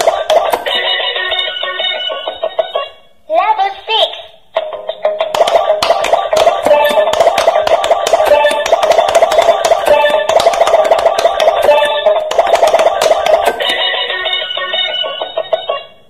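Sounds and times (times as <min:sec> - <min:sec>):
tinny toy game music: 0:05.4 - 0:16.0.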